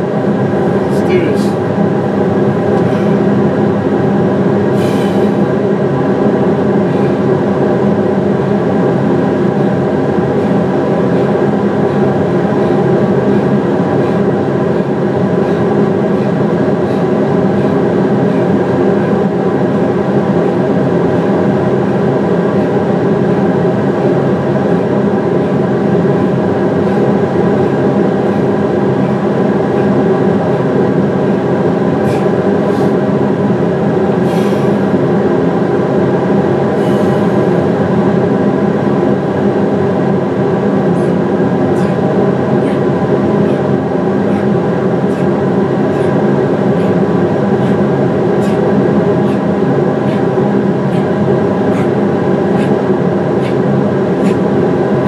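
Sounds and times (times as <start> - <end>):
industrial fans whirring: 0.0 - 55.0.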